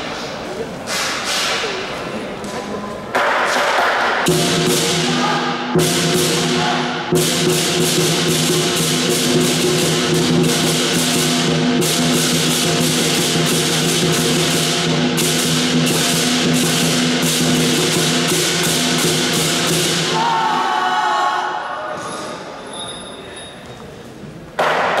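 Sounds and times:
cymbals clashing: 3.4s - 23.4s
lion drum: 4.2s - 20.9s.

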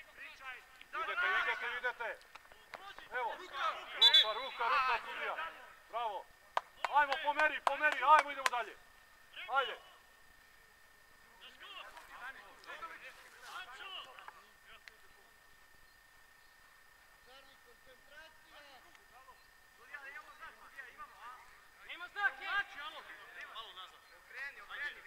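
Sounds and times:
distant players shouting: 0.9s - 5.9s.

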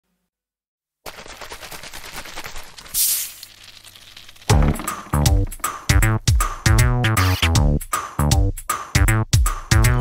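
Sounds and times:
crackle of fizzy bubbles: 1.1s - 4.6s
loud fizzy hiss: 2.4s - 3.6s.

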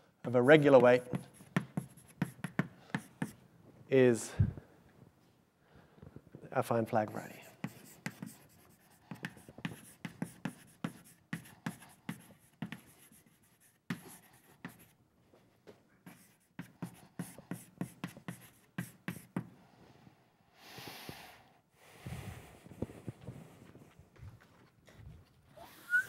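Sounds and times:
chalk tapping and scratching: 0.3s - 3.4s, 7.0s - 15.0s, 16.0s - 19.5s.

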